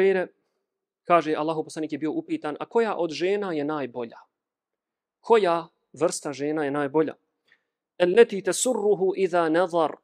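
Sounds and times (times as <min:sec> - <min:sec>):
man talking: 0:00.0 - 0:00.4, 0:01.0 - 0:04.3, 0:05.2 - 0:07.2, 0:08.0 - 0:10.0.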